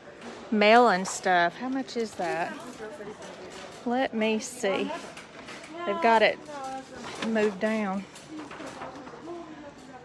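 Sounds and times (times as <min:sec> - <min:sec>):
faint murmured voices: 0:00.0 - 0:10.0
store hubbub: 0:00.0 - 0:10.0.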